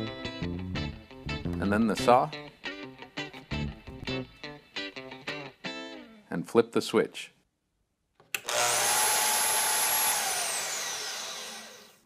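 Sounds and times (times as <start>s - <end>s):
bandsaw motor winding down: 8.4s - 12.0s.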